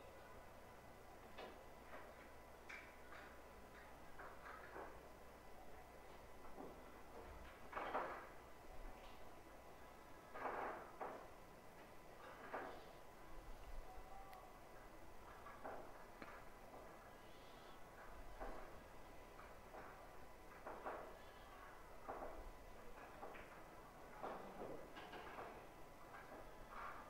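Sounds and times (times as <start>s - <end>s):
faint knocks and clacks: 1.2s - 5.2s, 6.0s - 13.7s, 14.3s - 27.0s.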